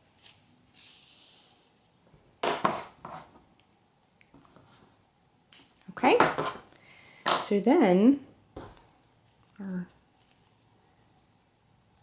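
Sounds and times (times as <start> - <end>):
soft yarn hiss: 0.0 - 2.0.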